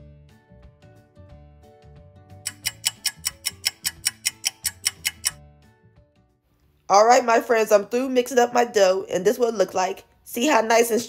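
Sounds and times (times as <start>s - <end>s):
background music: 0.0s - 11.0s
clock ticking fast: 2.5s - 5.4s.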